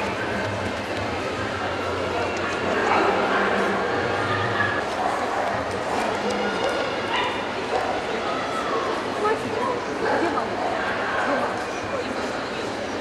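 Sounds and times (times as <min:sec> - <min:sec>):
crowd chatter: 0:00.0 - 0:13.0
dog barking: 0:07.1 - 0:08.0.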